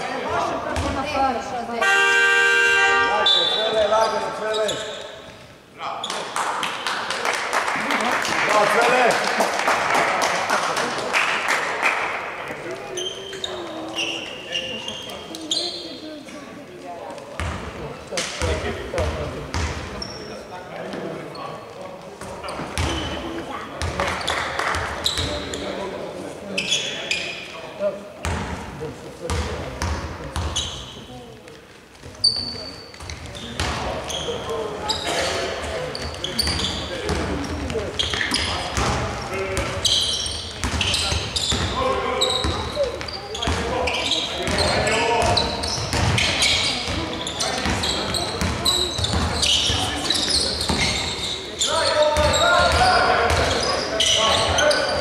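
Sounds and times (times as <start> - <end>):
sneakers squeaking: 0.0 - 6.3, 12.6 - 16.4, 17.1 - 27.6, 29.3 - 55.0
players' indistinct voices: 0.0 - 55.0
basketball bouncing on wooden court: 17.4 - 17.7, 22.8 - 23.1, 23.8 - 24.0, 32.9 - 33.9, 40.5 - 41.8, 42.4 - 43.7, 44.4 - 49.8, 50.6 - 51.0.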